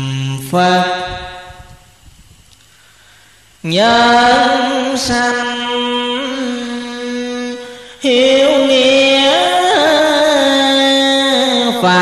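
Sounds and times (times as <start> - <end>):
person chanting: 0.0 - 1.8, 3.6 - 12.0
faint low background noise: 0.0 - 12.0.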